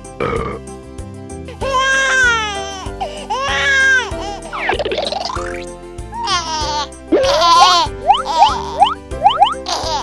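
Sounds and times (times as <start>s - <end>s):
children's backing music: 1.3s - 10.0s
baby crying: 1.6s - 4.6s, 6.1s - 8.9s, 9.6s - 10.0s.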